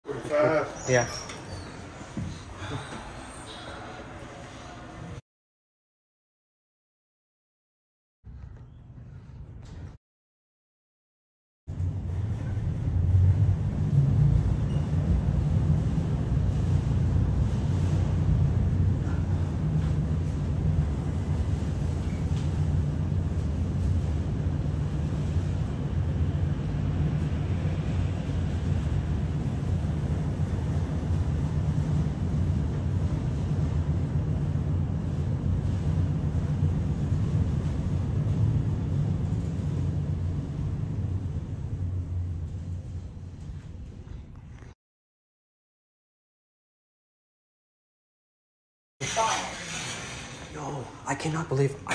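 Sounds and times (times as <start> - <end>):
elevator cab low rumble: 11.7 - 44.8.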